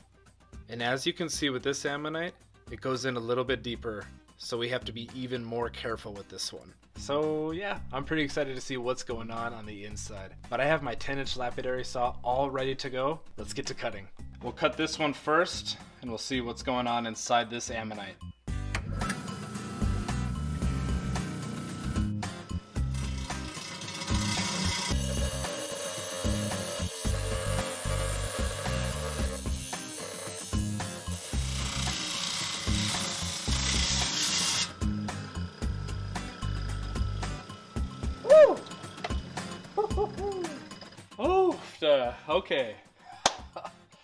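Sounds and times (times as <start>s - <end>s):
background music: 0.0s - 44.0s
saw blade grinding stone: 22.8s - 39.8s.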